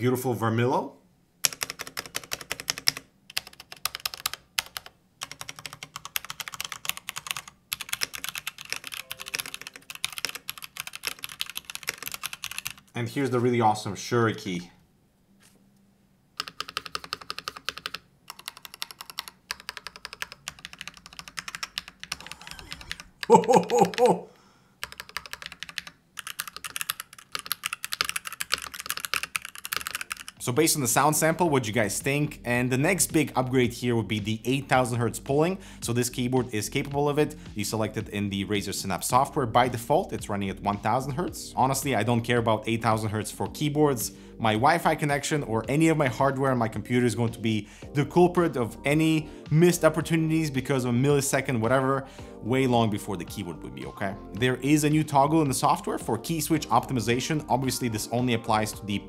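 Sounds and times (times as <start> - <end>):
keyboard typing: 1.4 - 12.9, 16.4 - 24.2, 24.8 - 30.5.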